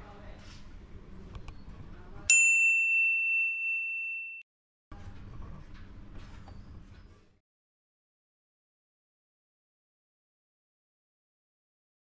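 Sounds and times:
bell-like ding: 2.3 - 4.4.

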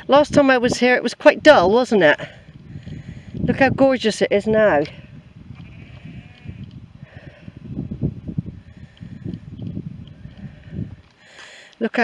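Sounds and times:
wind buffeting microphone: 0.0 - 11.2.

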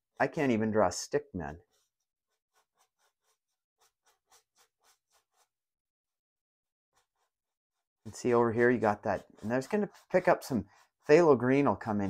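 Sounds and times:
paintbrush dabbing on canvas: 1.4 - 5.7, 7.0 - 12.0.

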